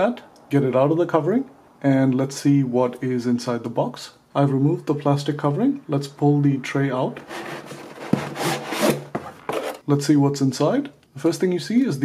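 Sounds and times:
tray scraping against cardboard: 7.2s - 9.8s.

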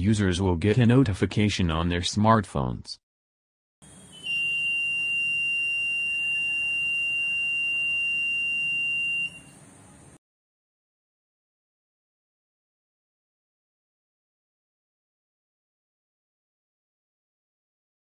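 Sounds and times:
electronic buzzer high tone: 3.8s - 9.6s.

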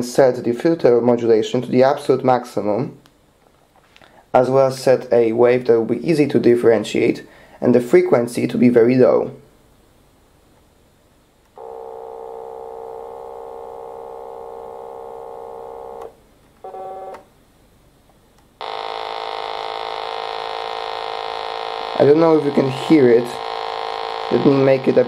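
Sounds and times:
synthesizer held notes: 11.6s - 16.2s, 18.6s - 25.0s.

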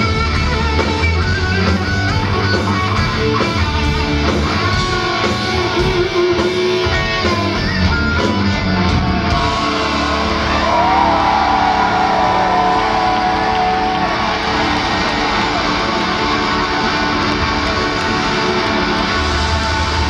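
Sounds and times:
bass and drums: 0.0s - 20.0s
distorted electric guitar: 0.0s - 20.0s.

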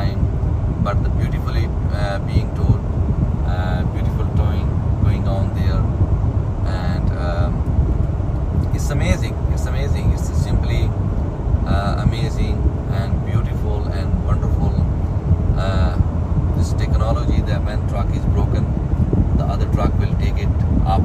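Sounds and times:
road rumble of tyres and engines: 0.0s - 21.0s.

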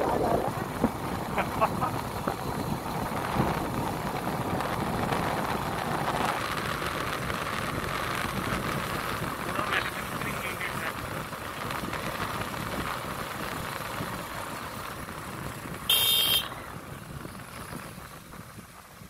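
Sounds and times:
vehicle road and engine noise: 0.0s - 19.0s.

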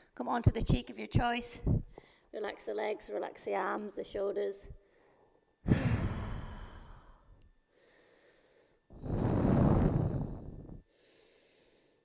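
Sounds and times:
woman breathing deeply: 4.8s - 12.0s.

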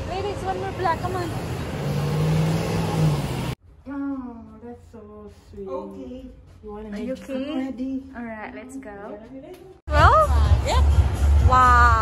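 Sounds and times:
city street traffic: 0.0s - 3.6s
vehicle engine passing close: 0.0s - 3.6s
woman's voice: 4.0s - 12.0s.

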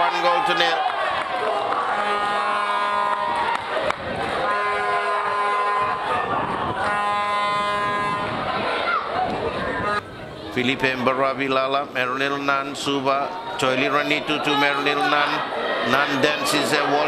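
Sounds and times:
crowd hubbub: 0.0s - 17.0s
spectators' horns blowing: 1.4s - 10.1s.

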